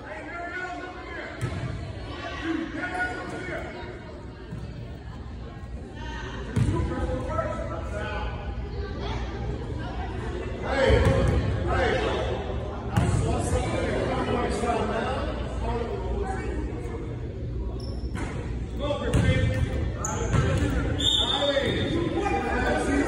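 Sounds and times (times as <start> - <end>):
echoing voices talking: 0.0 - 23.0.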